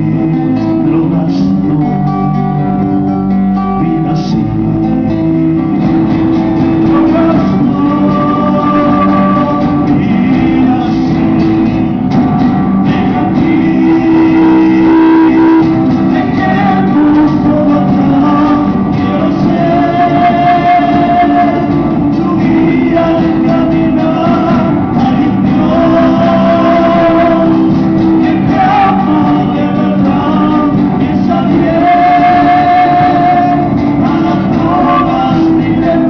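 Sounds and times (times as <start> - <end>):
strummed acoustic guitars: 0.0 - 36.0
bass drum: 4.4 - 36.0
long held note: 13.8 - 15.9.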